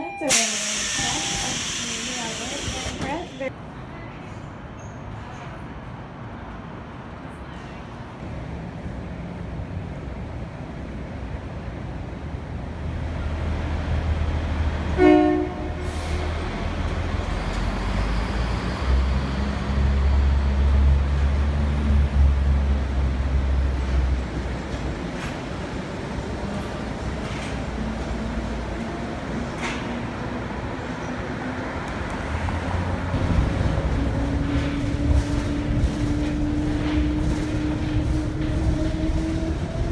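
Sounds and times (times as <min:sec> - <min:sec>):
monorail train rumbling past: 0:00.0 - 0:39.9
train horn toot: 0:14.9 - 0:16.4.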